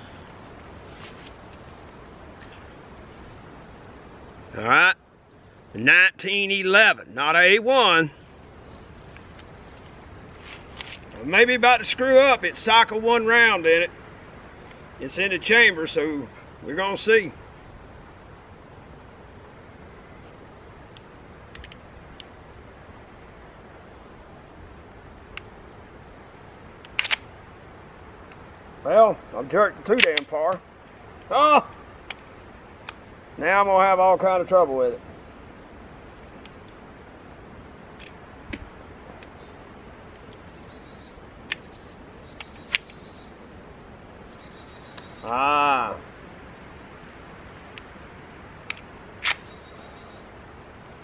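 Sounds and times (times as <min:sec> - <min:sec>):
low rumble with hiss: 0:00.0 - 0:51.0
pistol metallic clicks: 0:26.8 - 0:27.3, 0:30.0 - 0:30.3, 0:48.6 - 0:49.6.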